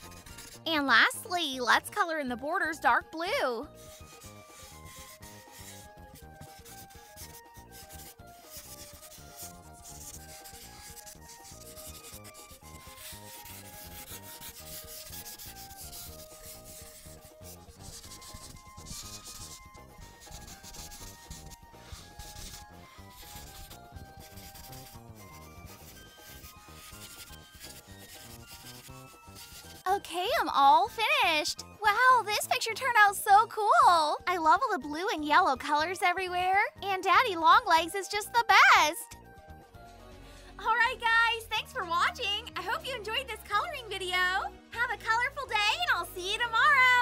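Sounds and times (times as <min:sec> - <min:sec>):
marker scratching on paper: 0:00.0 - 0:01.6, 0:03.4 - 0:32.4
soft melody: 0:00.0 - 0:47.0.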